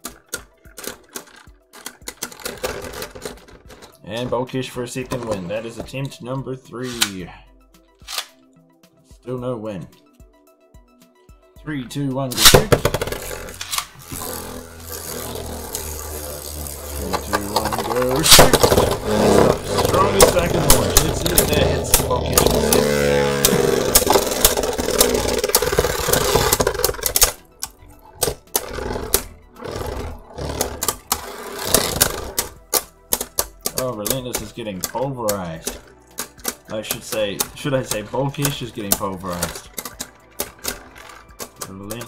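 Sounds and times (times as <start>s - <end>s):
spinning tops clashing clicks: 12.4s - 29.3s, 30.6s - 42.0s
spinning tops whirring: 12.4s - 42.0s.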